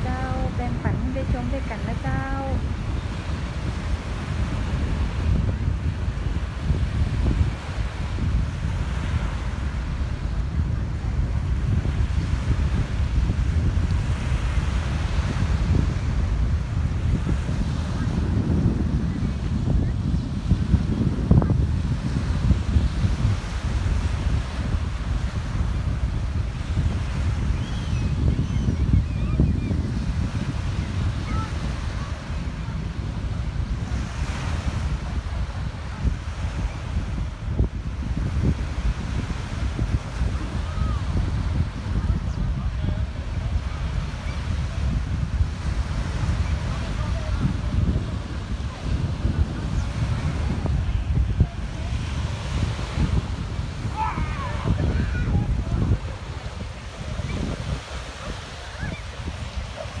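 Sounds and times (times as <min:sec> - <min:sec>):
waves on shingle beach: 0:00.0 - 1:00.0
wind buffeting microphone: 0:00.0 - 1:00.0.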